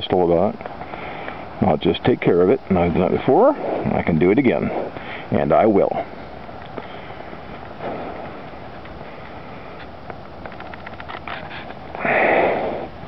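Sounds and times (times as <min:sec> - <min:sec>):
breath sniff or exhale: 0:11.5 - 0:13.0.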